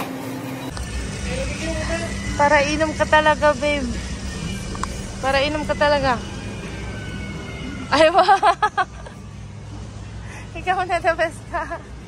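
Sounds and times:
store low hum: 0:00.0 - 0:12.0
traffic rumble: 0:00.0 - 0:12.0
wind: 0:00.0 - 0:12.0.

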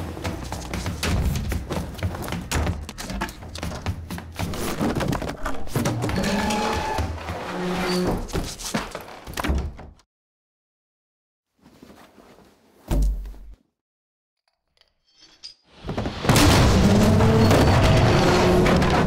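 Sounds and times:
thuds and knocks: 0:00.0 - 0:06.1.

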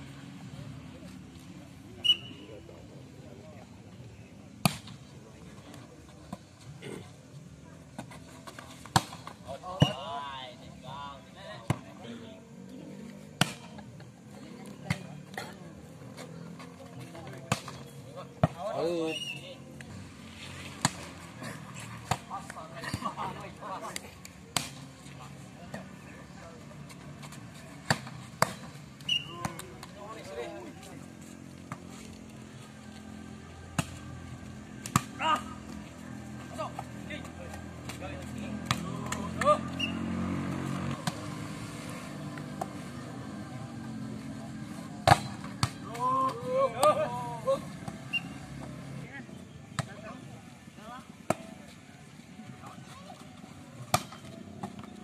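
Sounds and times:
players shouting calls: 0:29.0 - 0:30.8, 0:35.0 - 0:40.4, 0:45.1 - 0:51.6.

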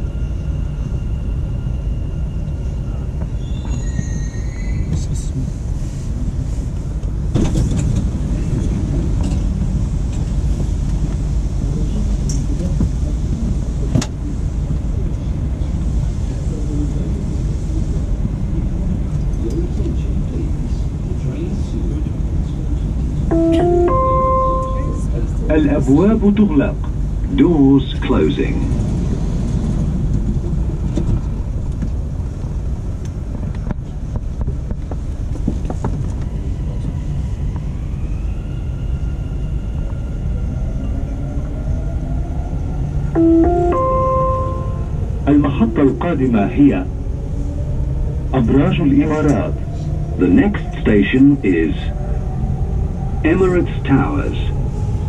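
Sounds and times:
train car low rumble: 0:00.0 - 0:55.0.

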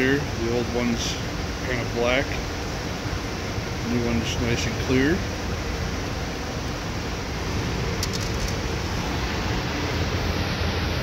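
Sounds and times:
steady background rush with hum: 0:00.0 - 0:11.0.

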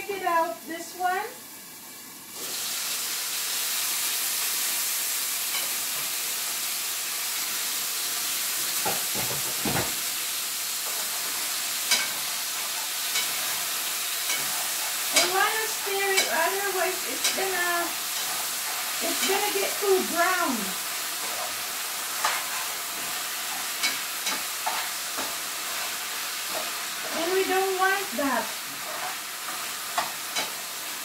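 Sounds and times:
meat sizzling in a frying pan: 0:00.0 - 0:31.0.

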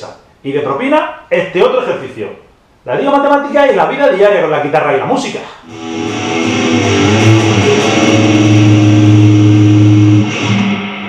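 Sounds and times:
electric guitar chord sustained: 0:05.6 - 0:11.0.

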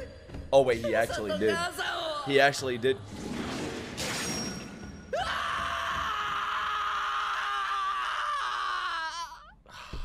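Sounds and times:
child screaming: 0:05.2 - 0:09.5.

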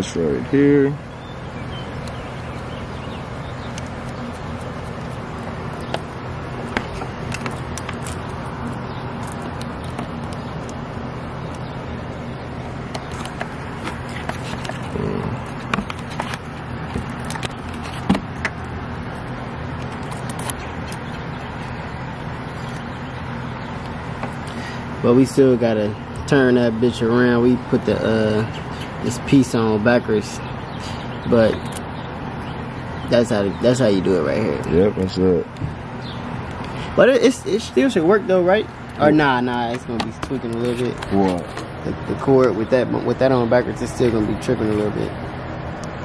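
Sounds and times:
low mechanical hum: 0:00.0 - 0:46.0
clicks and taps of engine parts: 0:05.8 - 0:10.8, 0:12.9 - 0:18.7, 0:23.8 - 0:24.6, 0:39.6 - 0:41.8.

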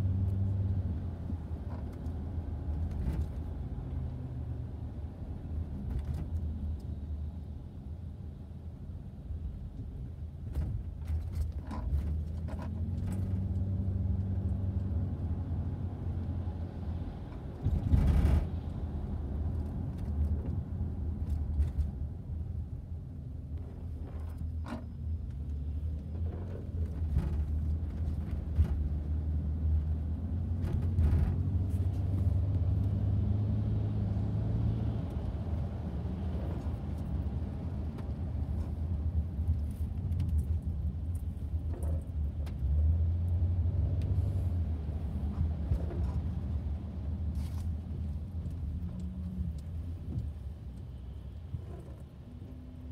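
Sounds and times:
car engine and road rumble: 0:00.0 - 0:52.9.

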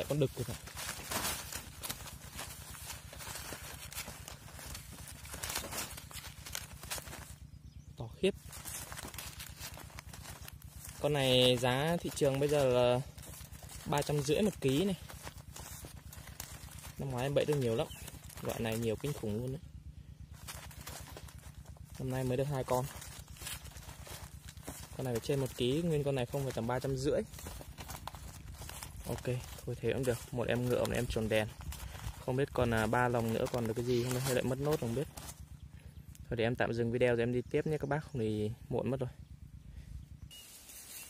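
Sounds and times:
plastic sack rustling: 0:00.0 - 0:19.6, 0:20.2 - 0:35.5
steady low rumble: 0:00.0 - 0:41.0.

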